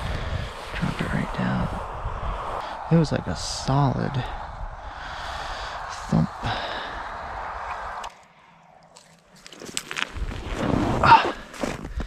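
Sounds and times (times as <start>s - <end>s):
steady hiss: 2.5s - 8.1s
footsteps crunching in snow: 8.9s - 12.0s.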